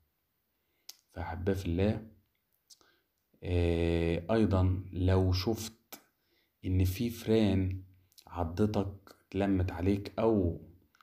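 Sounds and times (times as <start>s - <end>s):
mouth click: 0.9s - 1.1s
man narrating: 1.1s - 2.1s, 3.4s - 6.0s, 6.6s - 10.6s.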